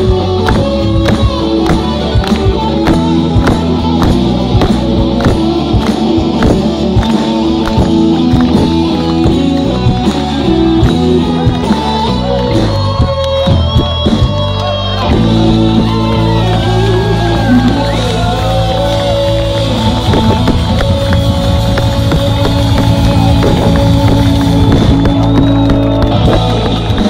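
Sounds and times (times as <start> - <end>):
drum and cymbal hits: 0.0 - 27.0
live rock band: 0.0 - 27.0.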